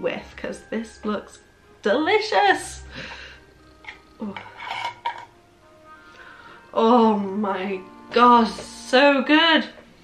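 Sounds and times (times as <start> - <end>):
faint background music: 0.0 - 10.0
jar lid scraping: 3.6 - 5.4.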